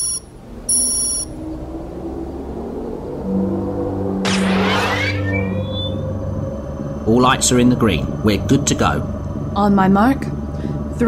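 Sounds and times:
rising electronic chirps: 0.0s - 6.9s
low steady hum: 0.0s - 11.0s
whoosh: 0.4s - 7.0s.

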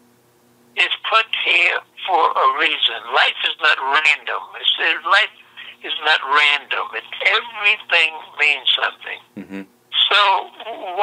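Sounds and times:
faint steady hum: 0.0s - 11.0s
man speaking: 9.4s - 9.6s.

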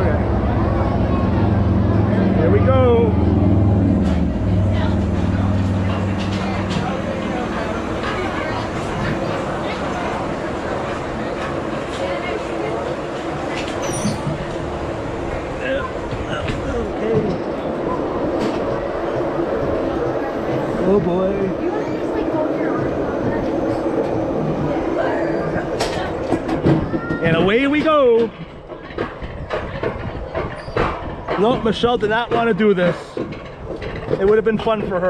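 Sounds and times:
coaster sled rumbling on rails: 0.0s - 35.0s
track clicks and rattles: 5.0s - 21.1s, 22.2s - 35.0s.

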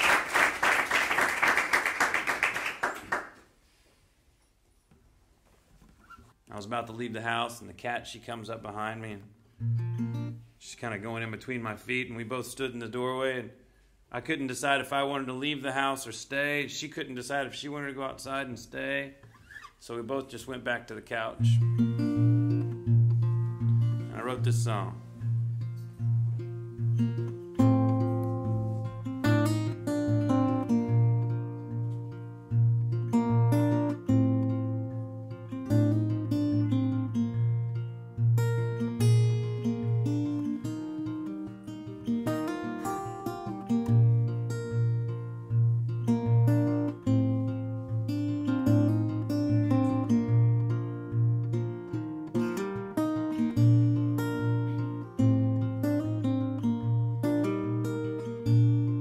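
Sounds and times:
fingerpicked acoustic guitar: 9.3s - 11.3s, 21.4s - 59.0s.

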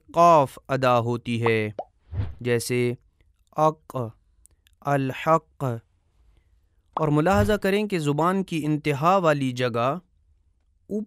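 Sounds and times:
man speaking: 0.0s - 1.8s, 2.4s - 3.0s, 3.6s - 4.2s, 4.8s - 5.8s, 7.0s - 10.0s.

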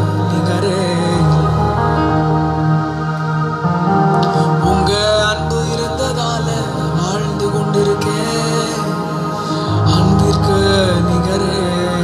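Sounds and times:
man singing: 0.0s - 2.4s, 4.2s - 12.0s.

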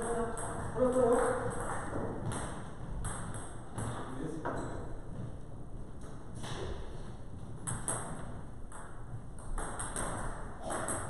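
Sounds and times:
table tennis ball bouncing: 0.0s - 5.2s, 6.0s - 11.0s.

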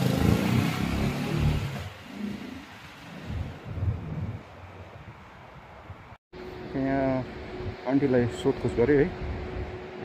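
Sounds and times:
motorcycle engine passing by: 0.0s - 2.7s.

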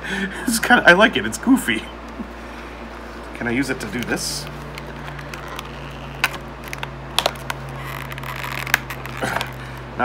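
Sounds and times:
plastic packaging crackling: 3.9s - 9.9s.

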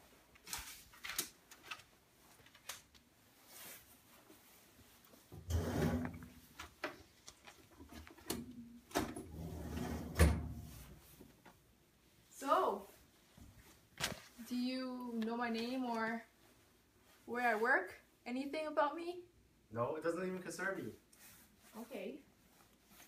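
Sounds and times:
drawers sliding open and shut: 5.3s - 6.4s, 8.2s - 11.0s.

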